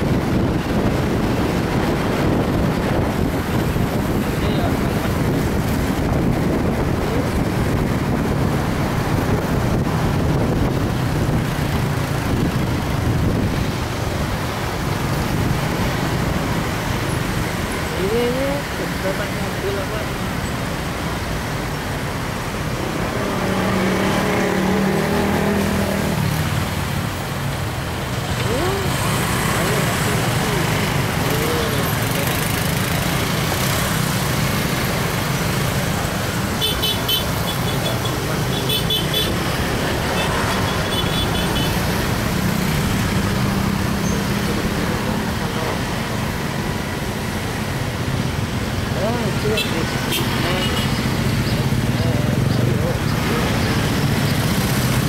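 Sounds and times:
dense road traffic: 0:00.0 - 0:55.0.

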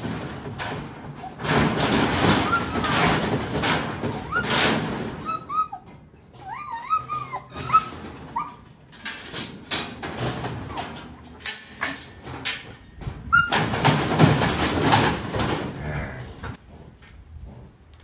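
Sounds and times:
metal chute clanking and rattling: 0:00.0 - 0:16.6
dog whining: 0:01.1 - 0:03.4, 0:04.1 - 0:08.9, 0:10.4 - 0:11.4, 0:13.2 - 0:13.6.

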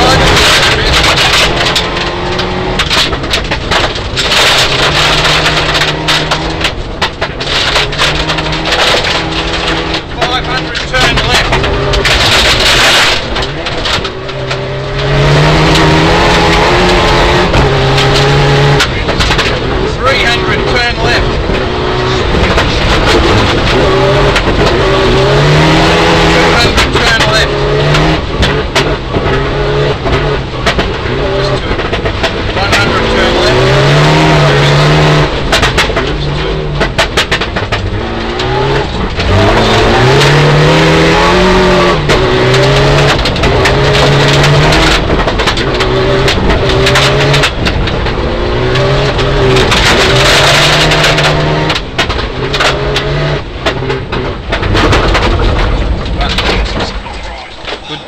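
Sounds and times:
rally car engine revving: 0:00.0 - 0:58.0.

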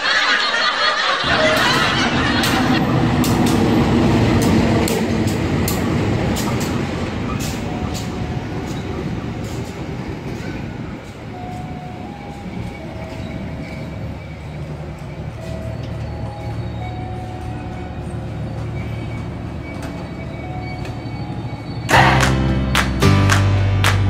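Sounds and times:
diesel locomotive engine rumbling: 0:00.0 - 0:24.0
train wheel clacks: 0:01.2 - 0:22.2
brief squeals: 0:10.3 - 0:21.9.

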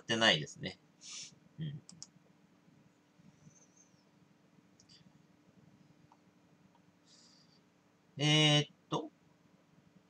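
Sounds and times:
short breath: 0:07.0 - 0:07.6.

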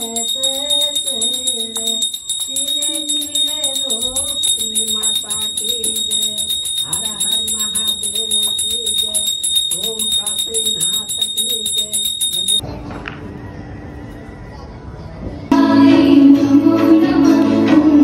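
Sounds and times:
brass hand bell ringing rapidly: 0:00.0 - 0:12.6
person singing devotional melody: 0:00.0 - 0:12.6, 0:15.5 - 0:18.0.

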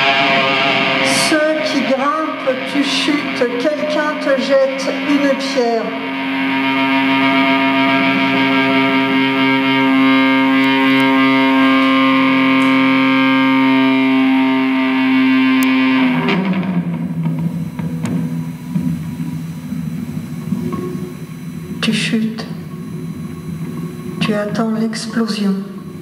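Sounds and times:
electric guitar drone: 0:00.0 - 0:26.0
rough low wavering sound: 0:00.0 - 0:26.0.

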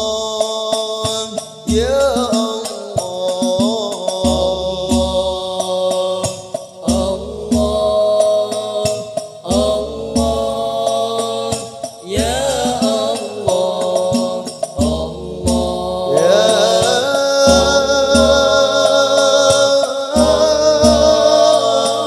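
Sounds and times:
frame drums rhythm: 0:00.0 - 0:22.0
men singing devotional melody: 0:00.0 - 0:22.0.

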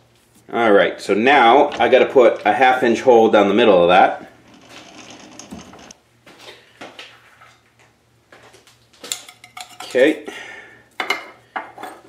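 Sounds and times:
metal clinks and knocks: 0:04.4 - 0:06.0.

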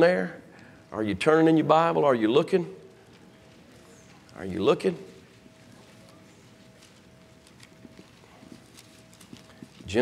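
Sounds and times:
pages being leafed through: 0:05.6 - 0:10.0.

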